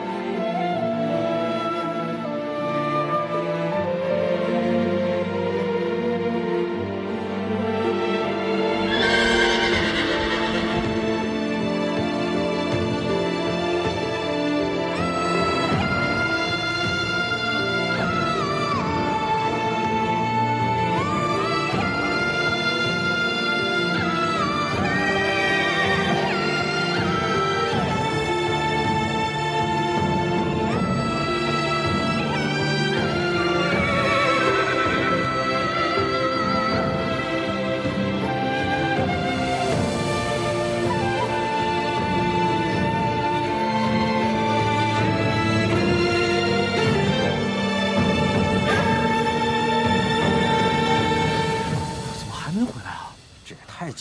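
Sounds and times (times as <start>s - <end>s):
background music: 0.0s - 54.0s
horse whinnying: 8.7s - 11.2s.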